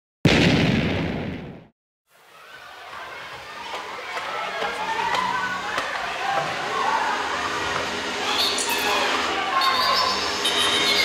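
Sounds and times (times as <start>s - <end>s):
loud explosion boom: 0.2s - 1.7s.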